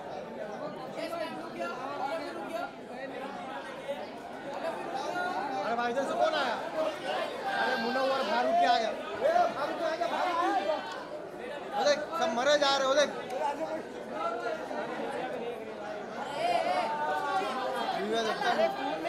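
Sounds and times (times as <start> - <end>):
chatter of many people: 0.0 - 19.0.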